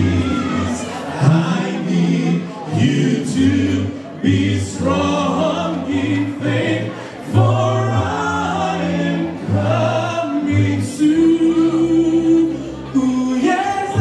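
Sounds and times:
choir singing gospel: 0.0s - 14.0s.

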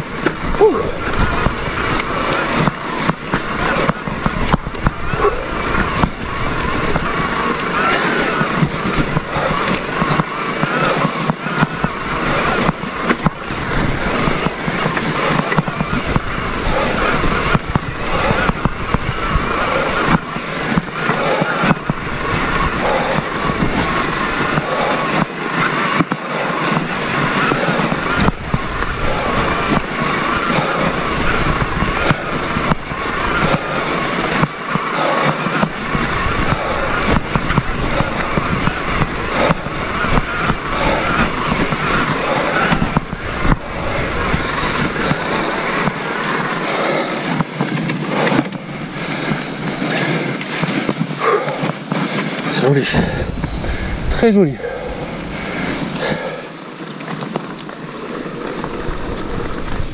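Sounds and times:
bike knocks and rattles: 0.0s - 21.1s, 55.8s - 59.9s
wind rumble on microphone: 0.0s - 25.3s, 35.5s - 46.7s, 47.3s - 56.1s.

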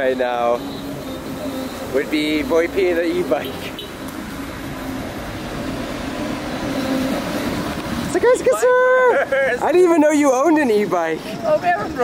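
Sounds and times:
road traffic rumble and hiss: 0.0s - 12.0s.

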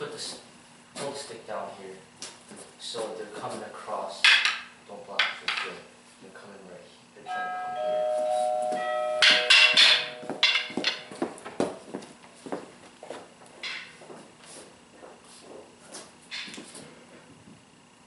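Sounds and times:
two-note musical tone: 7.3s - 10.8s
fighting sticks clacking: 8.8s - 11.8s.

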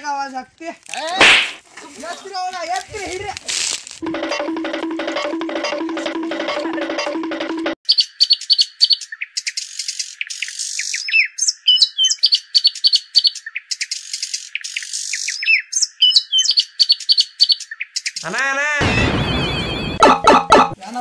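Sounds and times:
songbird chirps and trills: 7.8s - 18.2s.

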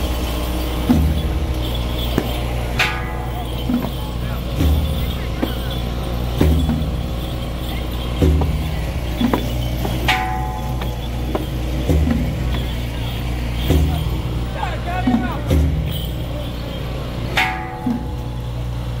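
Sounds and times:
crowd noise: 0.0s - 19.0s
large drum beats: 0.0s - 19.0s.

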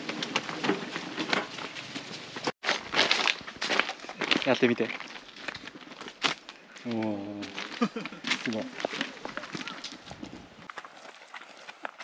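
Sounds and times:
footsteps on gravel and scree: 0.0s - 12.0s.

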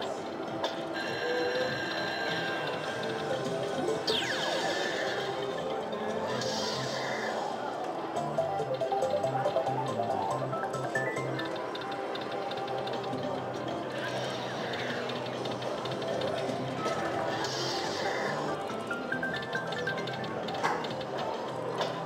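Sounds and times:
slot machine bonus music: 3.3s - 4.8s, 8.2s - 11.7s
slot machine win jingles: 8.2s - 11.6s.

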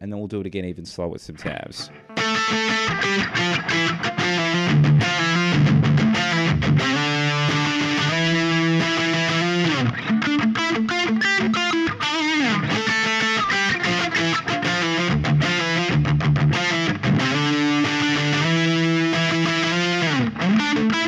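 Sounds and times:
distorted electric guitar: 1.4s - 21.0s.

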